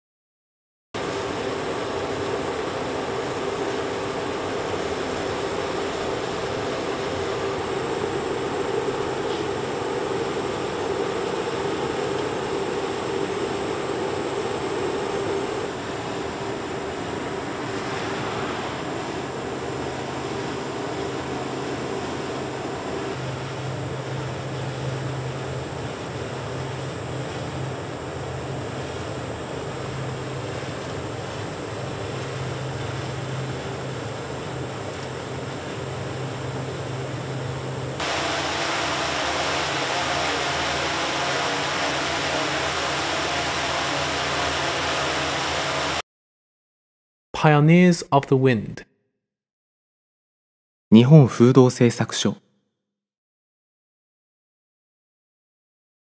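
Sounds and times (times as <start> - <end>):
drone propellers humming: 1.0 - 46.0
lower hum: 1.0 - 46.0
rush of air from fans: 1.0 - 46.0.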